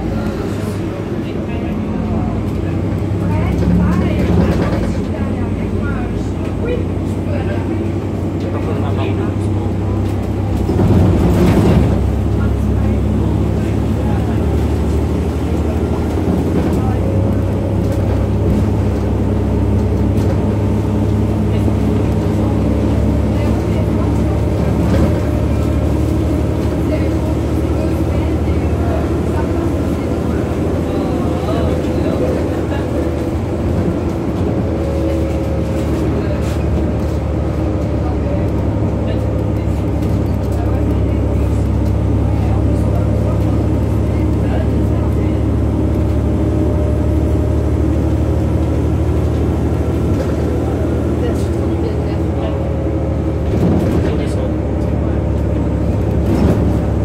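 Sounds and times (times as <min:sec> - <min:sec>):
bus engine drone: 0:00.0 - 0:57.0
road noise: 0:00.0 - 0:57.0.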